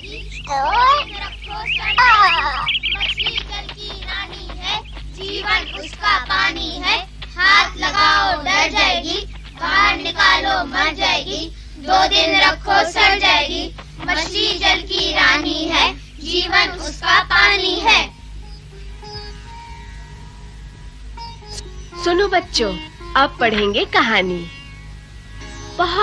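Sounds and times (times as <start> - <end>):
child singing: 0.0 - 18.1
faint low hum: 0.0 - 26.0.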